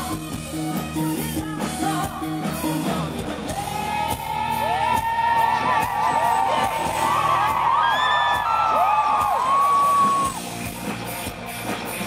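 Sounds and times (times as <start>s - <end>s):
electric guitar: 0.0s - 12.0s
rock band playing live: 0.0s - 12.0s
crowd voices rising and falling: 2.1s - 12.0s.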